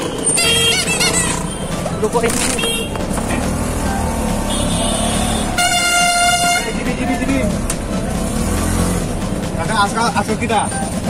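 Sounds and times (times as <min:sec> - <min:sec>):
engine rumble: 0:00.0 - 0:11.0
street traffic: 0:00.0 - 0:11.0
vehicle horn blast: 0:00.2 - 0:01.5, 0:02.5 - 0:03.0, 0:04.4 - 0:06.9.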